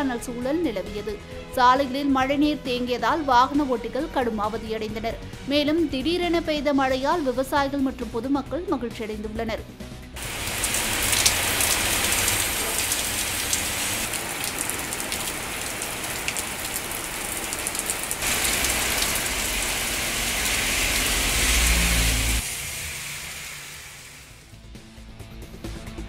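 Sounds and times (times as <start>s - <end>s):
heavy rain on street: 10.2s - 24.5s.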